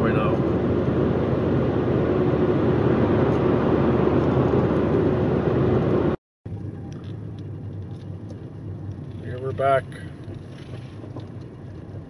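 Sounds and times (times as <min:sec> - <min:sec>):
car road and tyre noise: 0:00.0 - 0:12.0
car rolling slowly: 0:03.2 - 0:12.0.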